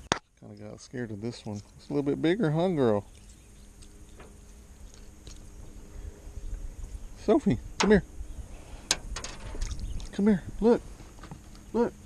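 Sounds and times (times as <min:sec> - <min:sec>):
low rumble: 0:02.4 - 0:12.0
handling clicks and rustles: 0:08.8 - 0:10.3.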